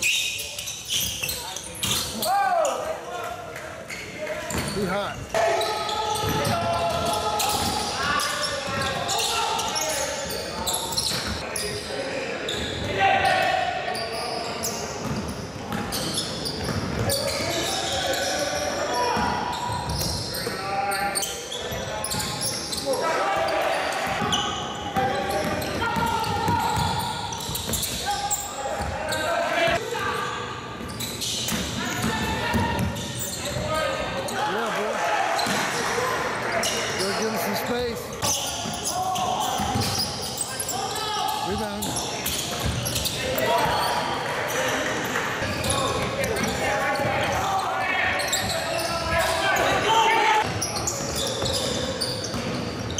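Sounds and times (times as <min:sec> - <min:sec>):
voices in a hall: 0:00.0 - 0:52.9.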